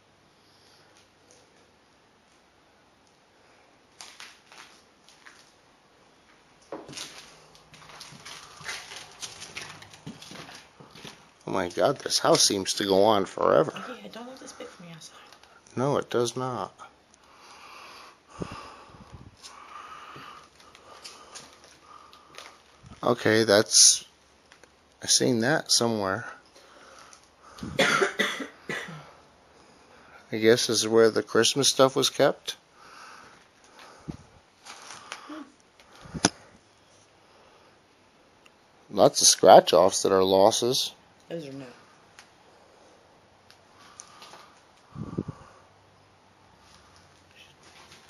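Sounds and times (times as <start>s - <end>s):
footsteps walking through a house: 3.9s - 5.6s, 6.2s - 12.5s, 19.1s - 23.2s, 46.6s - 48.0s
rustling: 6.2s - 12.1s, 33.2s - 37.2s, 46.6s - 48.0s
person coughing: 27.6s - 29.1s.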